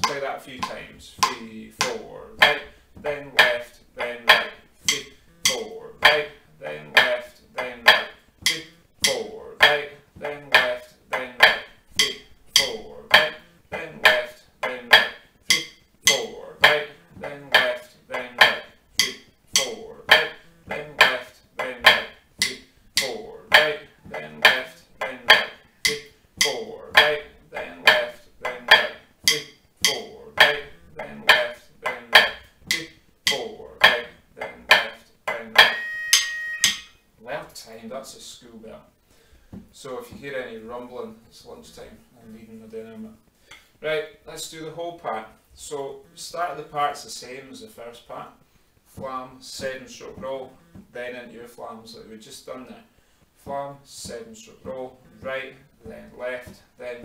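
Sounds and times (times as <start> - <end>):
drumsticks on practice pad: 0.0 - 37.0.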